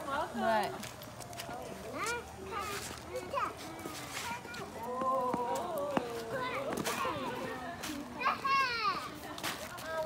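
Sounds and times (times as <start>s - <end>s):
young child's voice: 2.0s - 4.9s.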